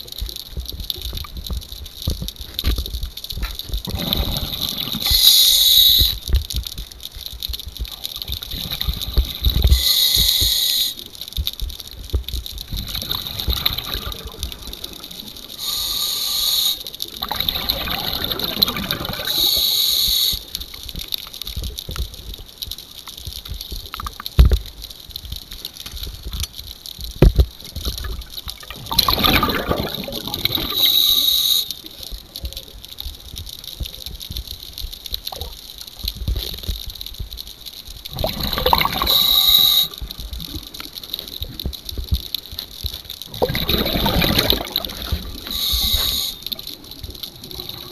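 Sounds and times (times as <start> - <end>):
gurgling exhaled bubbles: 3.8 - 6.4, 7.8 - 10.5, 12.6 - 20.5, 27.7 - 32.4, 38.1 - 42.2, 43.2 - 47.9
hissing regulator inhale: 5.0 - 6.2, 9.5 - 11.1, 15.6 - 17.0, 19.2 - 20.6, 30.0 - 31.9, 38.8 - 40.0, 43.5 - 46.7.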